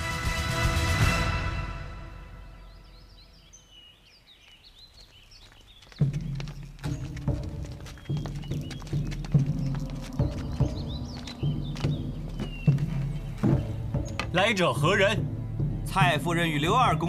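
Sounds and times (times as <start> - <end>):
birds chirping: 2.2 - 17.0
loud uneven low thumps: 6.0 - 17.0.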